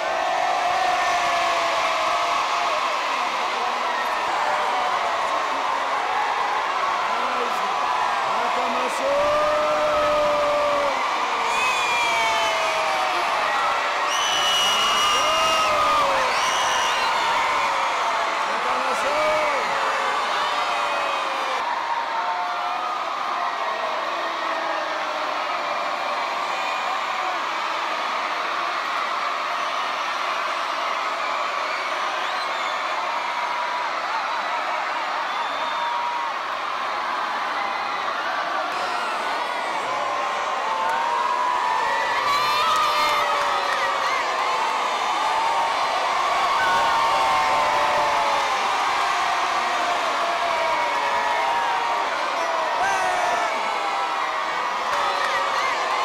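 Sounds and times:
crowd cheering and shouting: 0.0s - 56.0s.

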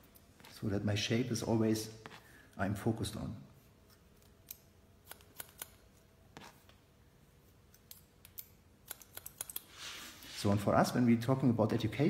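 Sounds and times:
scissors snipping hair: 3.9s - 5.8s, 7.7s - 9.7s.

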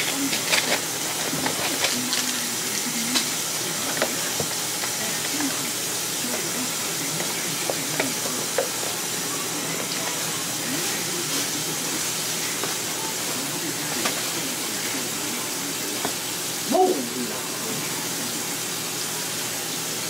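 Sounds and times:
steady hiss: 0.0s - 20.0s.

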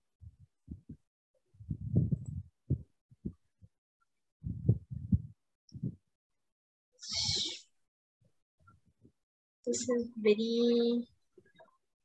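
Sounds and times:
dull low knocks and thumps: 0.2s - 1.0s, 1.6s - 3.5s, 4.4s - 6.0s.

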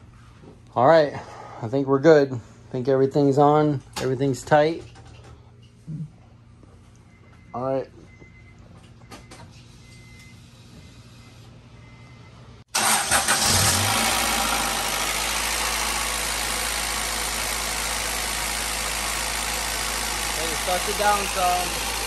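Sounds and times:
car engine starting and idling: 12.7s - 22.0s.

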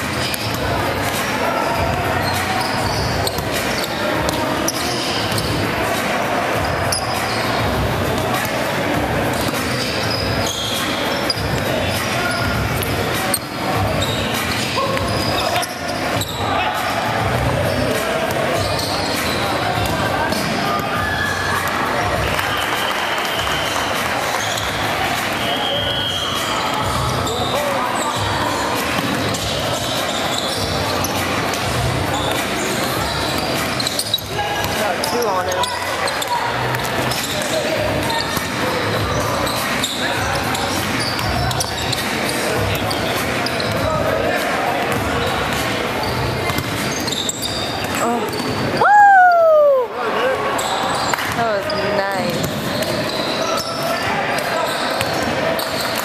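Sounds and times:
players' voices echoing: 0.0s - 56.0s
basketballs bouncing on hardwood: 52.2s - 53.2s.

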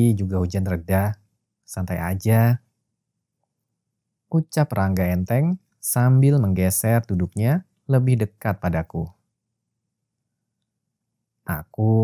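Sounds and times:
narrator speaking: 0.0s - 2.6s, 4.3s - 9.1s, 11.5s - 12.0s.

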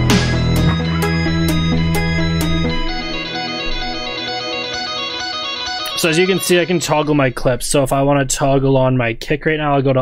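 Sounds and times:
electric guitar plucked notes: 0.0s - 8.2s.

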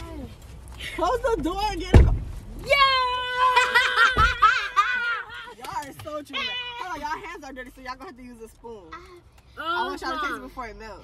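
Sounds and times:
girls excited cries: 2.6s - 5.6s.

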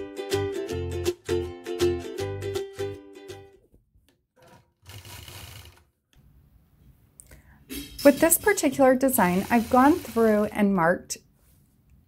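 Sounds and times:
quilting machine stitching: 4.4s - 6.0s, 8.0s - 10.6s.

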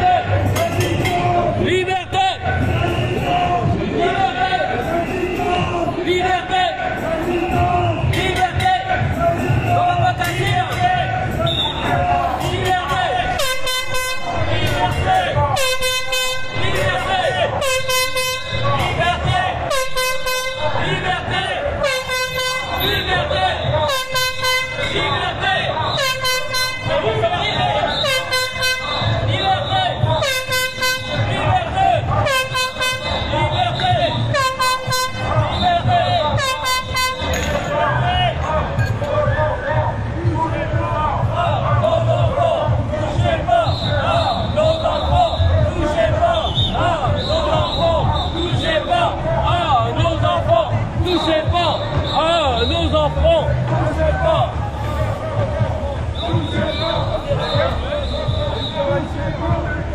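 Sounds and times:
voices of a marching crowd: 0.0s - 59.9s
air horn blasts: 11.4s - 12.0s, 13.2s - 19.0s, 19.6s - 21.0s, 21.8s - 25.2s, 25.8s - 31.5s, 32.2s - 37.7s.

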